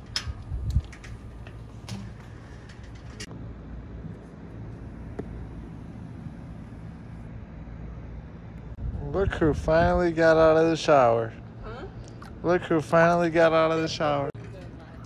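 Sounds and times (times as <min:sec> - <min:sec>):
faint hum: 0:00.0 - 0:15.0
low outdoor rumble: 0:00.0 - 0:15.0.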